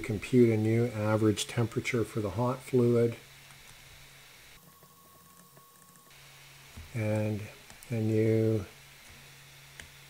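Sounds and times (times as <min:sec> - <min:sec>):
weak steady high tone: 0:04.5 - 0:08.8.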